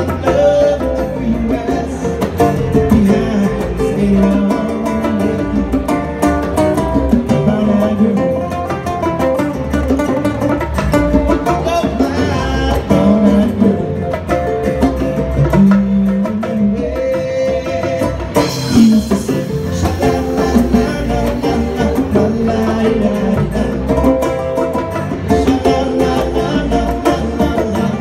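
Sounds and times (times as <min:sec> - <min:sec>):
acoustic guitars: 0:00.0 - 0:28.0
congas: 0:00.0 - 0:28.0
small live band playing: 0:00.0 - 0:28.0.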